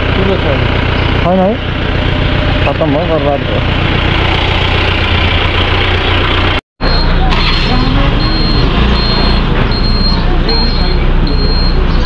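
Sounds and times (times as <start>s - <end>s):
engines running: 0.0s - 12.0s
high-pitched electronic beep: 6.8s - 12.0s
voices: 6.9s - 12.0s.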